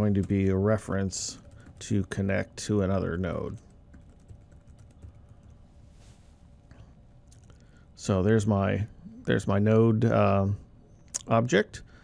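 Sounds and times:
typing on computer keyboard: 1.3 - 2.0, 3.4 - 5.6.

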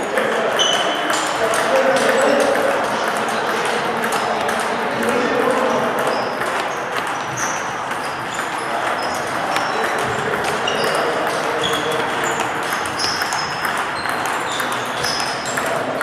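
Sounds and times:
table tennis balls clicking: 0.0 - 16.0.

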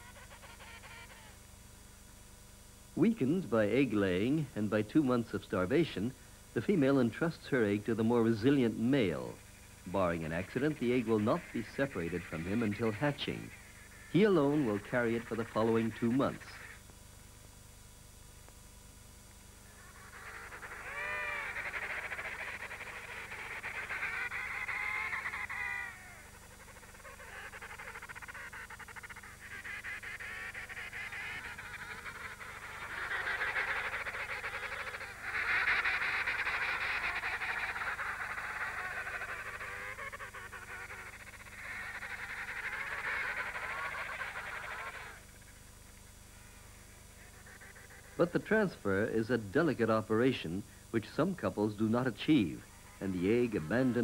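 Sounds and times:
penguins calling: 0.0 - 1.4, 6.6 - 16.9, 19.6 - 50.4, 51.1 - 54.0.

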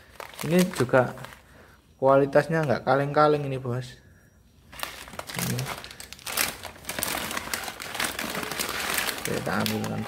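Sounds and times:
plastic packet crinkling: 0.0 - 1.6, 4.7 - 10.0.

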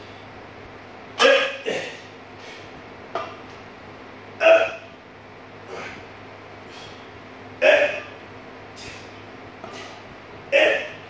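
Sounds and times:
man grunting with effort: 4.4 - 4.9, 5.7 - 6.0, 7.6 - 8.1, 10.5 - 11.0.

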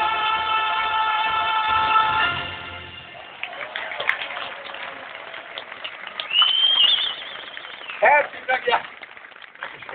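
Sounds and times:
concert audience noise: 0.0 - 9.9
loud high whistle: 6.2 - 8.1.

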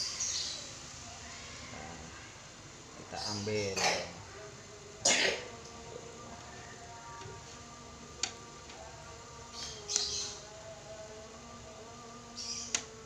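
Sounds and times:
faint music: 0.0 - 13.0.

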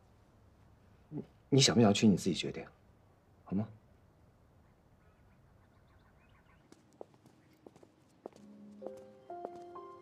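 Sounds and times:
footsteps on stone: 6.6 - 10.0
soft background music: 7.8 - 10.0.

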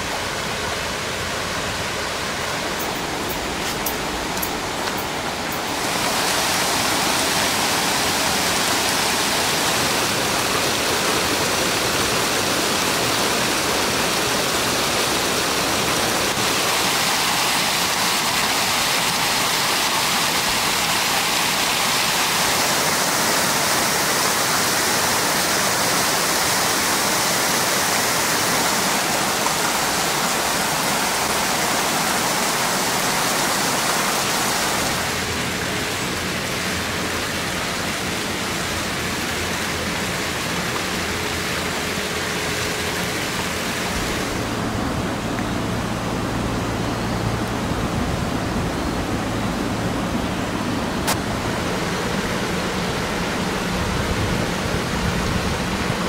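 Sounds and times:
creek water cascading over rocks: 0.0 - 56.0.

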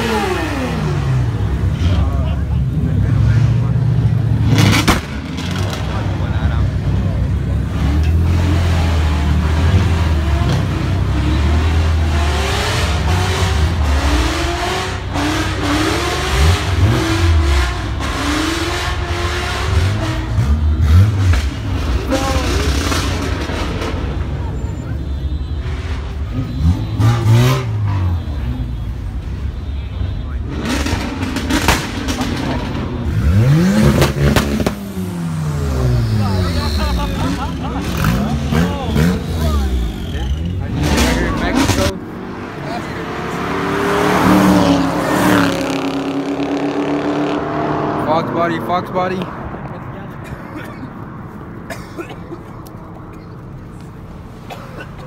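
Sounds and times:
car engines revving: 0.0 - 55.0
crowd chatter: 0.0 - 55.0
idling cars rumbling: 0.0 - 55.0.

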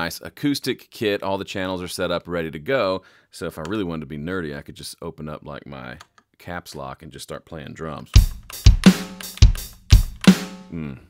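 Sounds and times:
closed hi-hat: 8.1 - 10.7
kick drum hits: 8.2 - 10.4
snare hit: 8.2 - 10.6.

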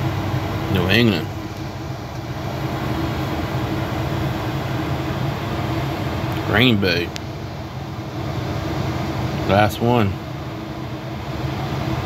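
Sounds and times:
steady background hum: 0.0 - 12.0.

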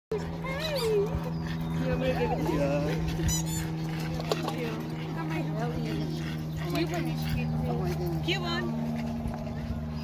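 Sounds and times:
dog whining: 0.1 - 4.4
steady low hum: 0.1 - 10.0.

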